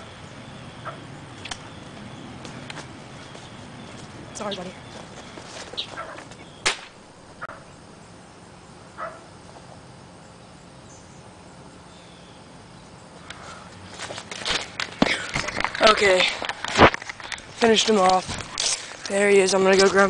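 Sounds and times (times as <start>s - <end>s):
air rifle shot: 6.6s - 7.0s
camera handling rustling: 14.0s - 19.1s.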